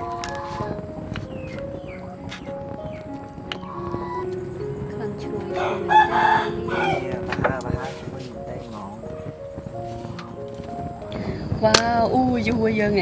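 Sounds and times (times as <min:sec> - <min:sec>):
quiet background music: 0:00.0 - 0:13.0
rooster crowing: 0:05.5 - 0:07.2.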